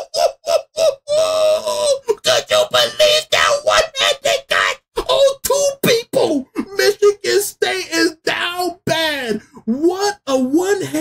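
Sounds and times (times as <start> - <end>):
man crying out excitedly: 0.0 - 5.6.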